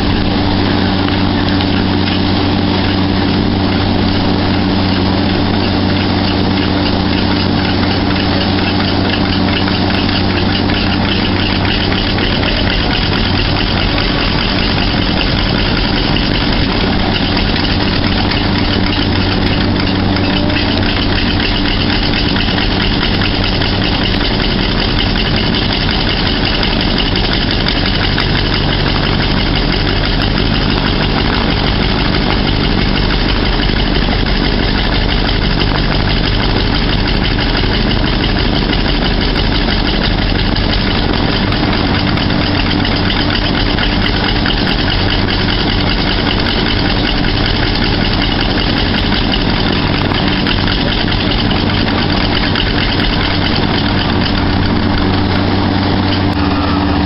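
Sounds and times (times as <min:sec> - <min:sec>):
radial aircraft engine idling: 0:00.0 - 0:57.0.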